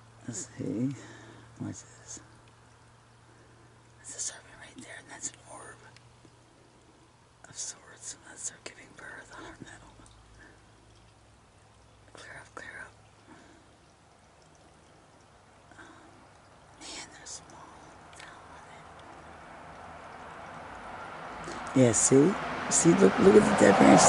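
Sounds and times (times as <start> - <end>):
faint low hum: 0.0 - 24.0
person whispering: 0.3 - 2.4, 4.0 - 6.0, 7.4 - 10.1, 12.1 - 13.6, 16.8 - 19.0, 21.5 - 24.0.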